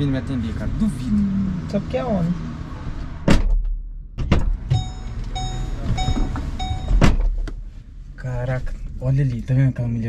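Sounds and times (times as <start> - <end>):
car door thudding shut: 3.2 - 5.0, 5.7 - 7.5
car warning chime beeping: 4.7 - 7.0.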